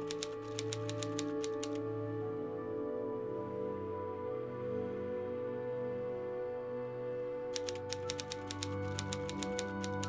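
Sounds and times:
keyboard key clicks: 0.0s - 1.8s, 7.6s - 10.0s
background music: 0.0s - 10.0s.

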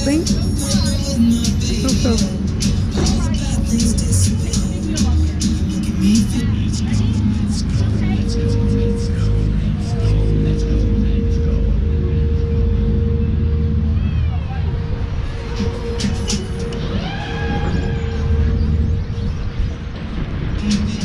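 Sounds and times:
fairground ride rumble: 0.0s - 21.0s
steady hum: 0.0s - 21.0s.

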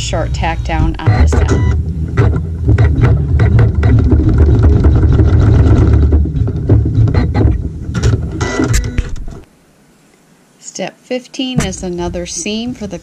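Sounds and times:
embroidery machine humming: 0.0s - 9.5s.

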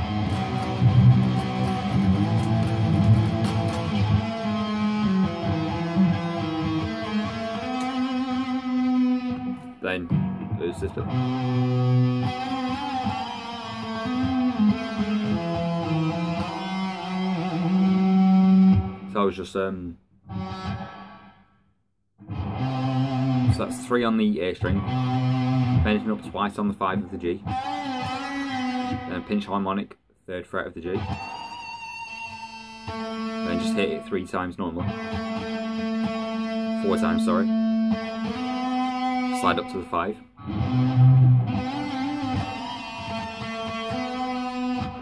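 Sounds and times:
electric guitar note ringing: 0.0s - 19.0s, 24.7s - 26.3s, 34.8s - 45.0s.

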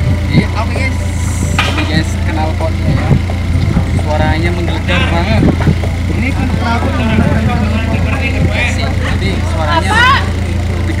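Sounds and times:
car engine idling: 0.0s - 11.0s.

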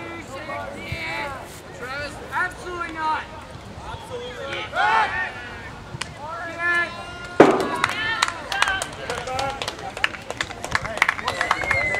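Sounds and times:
people calling out and talking: 0.0s - 11.9s
loud thump: 7.4s - 7.9s.

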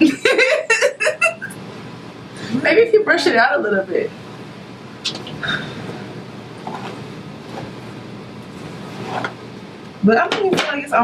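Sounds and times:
steady low hum with hiss: 0.0s - 11.0s.

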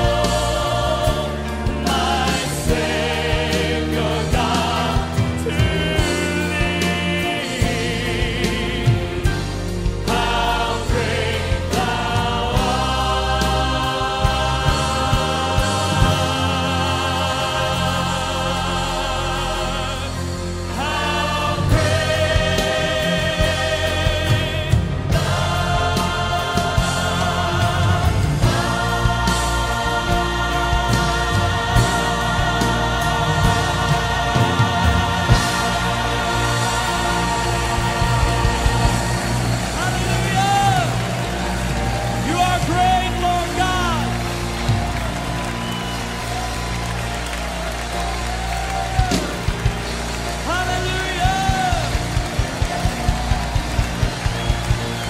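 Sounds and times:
band accompanying: 0.0s - 55.0s
choir singing held notes: 0.0s - 55.0s
sustained instrumental chords: 0.0s - 55.0s.

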